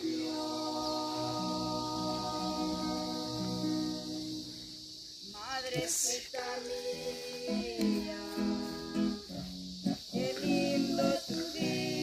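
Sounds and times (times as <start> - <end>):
person singing folk song: 0.0 - 4.5, 5.3 - 12.0
acoustic guitar: 0.0 - 12.0.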